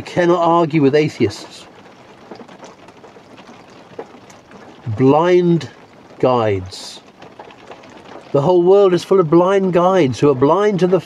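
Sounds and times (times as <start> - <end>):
rain on a van roof: 0.0 - 11.0.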